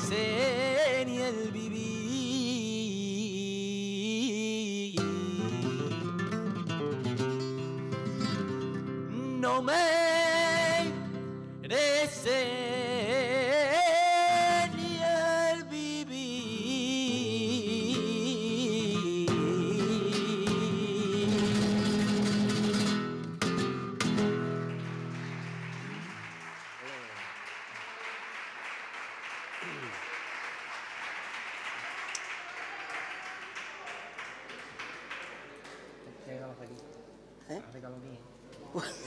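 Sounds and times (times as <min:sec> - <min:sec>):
guitar strummed chords: 0:17.8 - 0:26.2
audience applause: 0:24.3 - 0:36.2.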